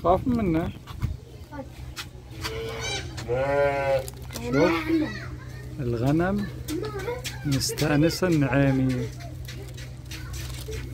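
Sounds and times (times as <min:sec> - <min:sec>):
sheep bleating: 0:02.4 - 0:04.1.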